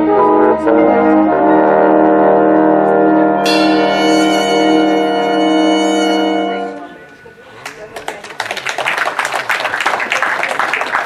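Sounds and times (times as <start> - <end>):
big band sustained brass chord: 0.0 - 7.2.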